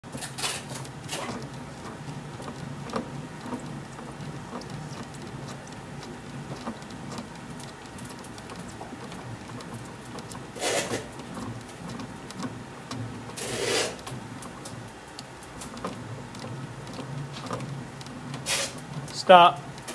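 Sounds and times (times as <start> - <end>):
faint crackling ticks: 0.4 - 19.9.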